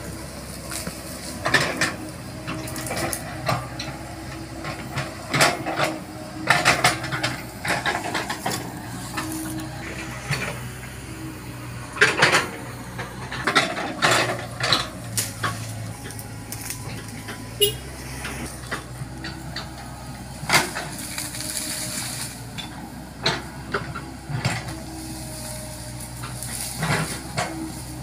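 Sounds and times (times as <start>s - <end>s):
excavator engine hum: 0.0s - 28.0s
metallic clanks and scrapes: 0.7s - 27.9s.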